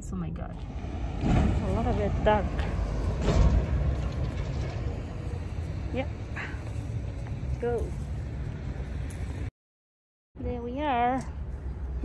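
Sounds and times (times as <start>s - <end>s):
low outdoor rumble: 0.0s - 9.5s.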